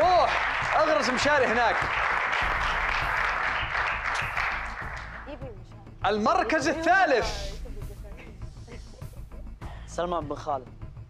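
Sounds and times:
studio audience applauding: 0.0s - 5.4s.

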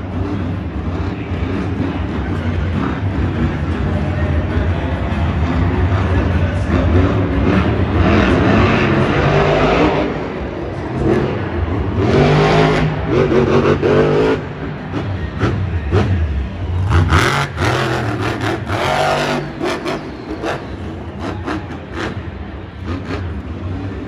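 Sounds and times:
monster truck engine revving: 0.0s - 24.0s.

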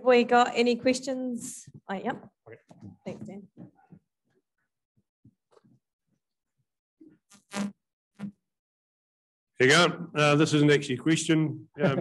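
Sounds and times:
microphone rubs and bumps: 7.2s - 8.4s.

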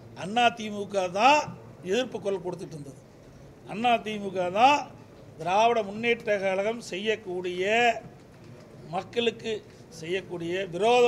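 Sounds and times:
man speaking: 0.2s - 3.0s, 3.7s - 8.0s, 8.9s - 11.0s.

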